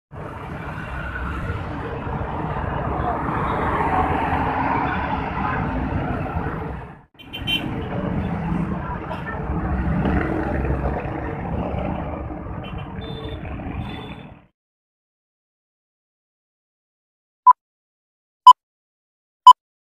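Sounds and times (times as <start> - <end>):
tyres on road: 0.1 - 14.5
vehicle engines passing: 0.2 - 14.5.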